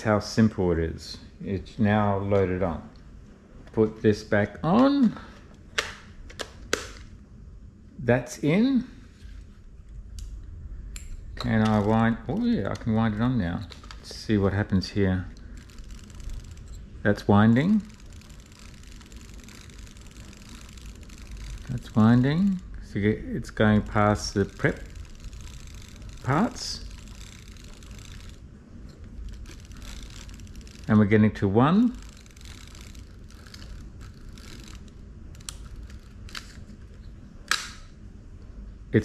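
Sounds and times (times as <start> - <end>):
film-advance crank clicking: 11.4 - 36.8.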